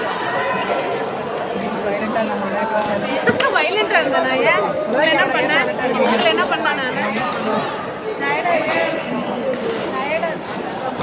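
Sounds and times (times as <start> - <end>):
people chattering and calling out: 0.0 - 11.0.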